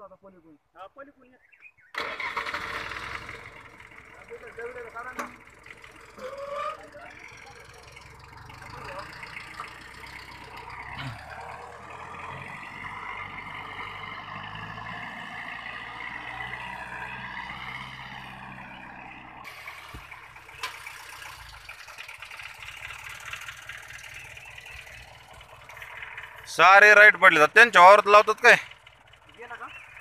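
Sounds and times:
tractor diesel engine running: 0:02.0 - 0:30.0.

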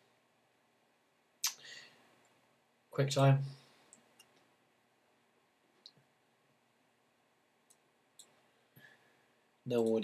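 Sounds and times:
computer mouse clicks: 0:07.7 - 0:08.4.

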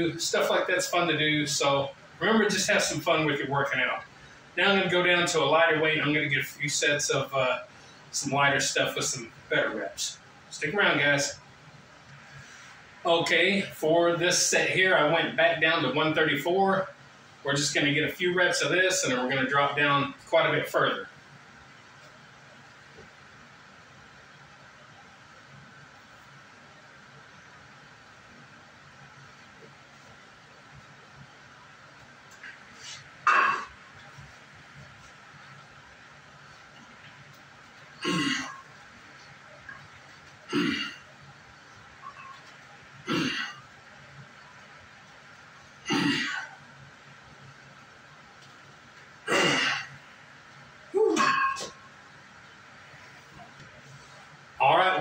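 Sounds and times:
man grunting with effort: 0:51.0 - 0:51.5.

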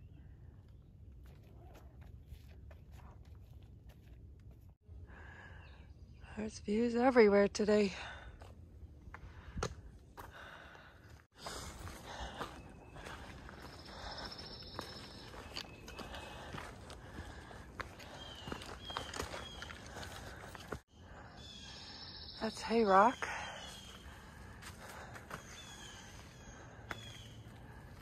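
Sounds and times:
footsteps on dirt trail: 0:01.1 - 0:04.8, 0:08.0 - 0:20.8, 0:23.0 - 0:28.0.

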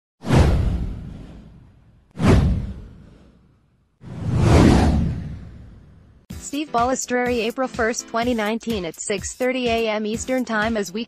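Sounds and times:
deep boom: 0:00.2 - 0:03.4, 0:04.1 - 0:06.2
whoosh: 0:00.2 - 0:06.3.

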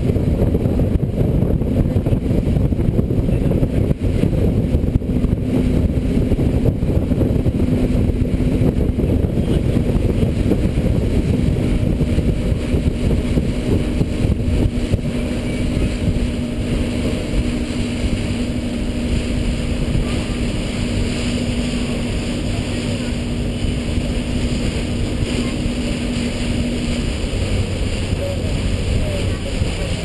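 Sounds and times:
ferry engine droning: 0:00.0 - 0:30.0
wind buffeting microphone: 0:00.0 - 0:30.0.

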